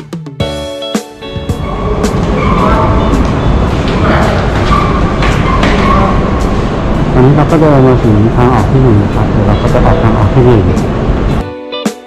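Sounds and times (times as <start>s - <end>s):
train rumbling: 1.4s - 11.4s.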